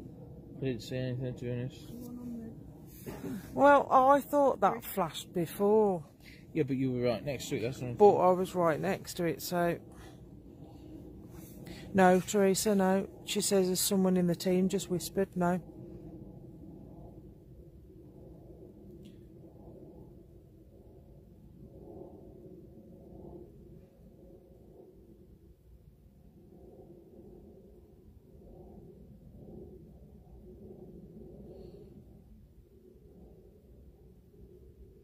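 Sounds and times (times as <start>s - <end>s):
faint low outdoor rumble: 0.0s - 35.0s
hum: 0.0s - 35.0s.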